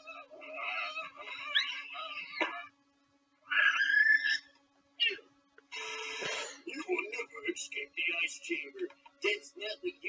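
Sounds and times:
person shrieking and squealing: 0.0s - 2.6s, 3.5s - 5.2s.

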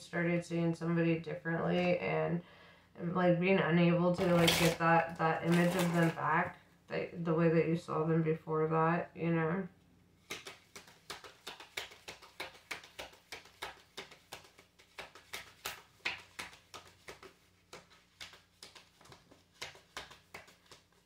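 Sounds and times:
cards being shuffled: 4.2s - 6.4s, 10.2s - 21.0s.

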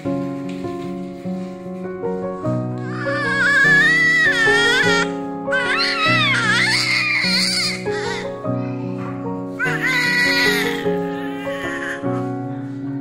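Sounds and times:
background music with held notes: 0.0s - 13.0s
newborn baby crying: 2.8s - 8.4s, 9.6s - 12.1s.

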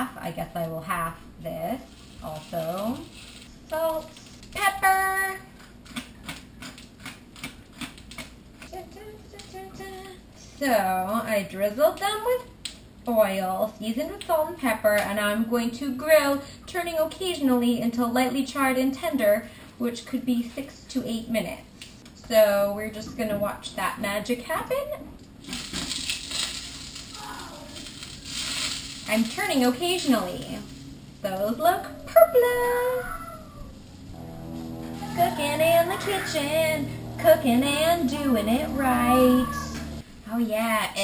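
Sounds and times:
pepper mill grinding: 1.8s - 4.7s, 25.4s - 30.8s
slices frying in oil: 25.4s - 30.7s
woman humming: 31.9s - 40.0s.

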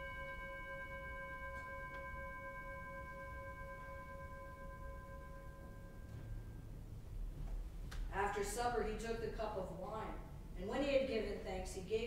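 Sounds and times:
metal bowl bell ringing: 0.0s - 6.8s.

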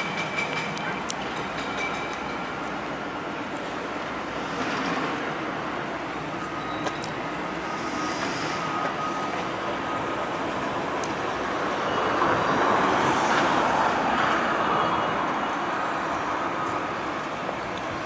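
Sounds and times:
street traffic: 0.0s - 18.0s.

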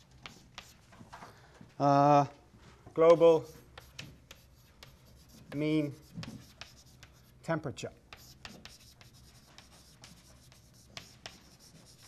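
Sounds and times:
chalk scratching on blackboard: 0.0s - 0.9s, 3.1s - 7.5s, 8.1s - 12.0s
chalk tapping: 0.0s - 1.0s, 3.0s - 7.4s, 8.0s - 12.0s.

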